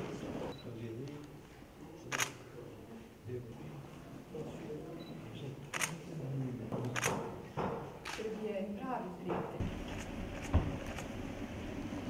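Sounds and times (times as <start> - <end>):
low conversation: 0.5 - 9.6
camera shutter click: 2.1 - 2.4, 5.7 - 6.0, 6.9 - 7.2, 8.0 - 8.3.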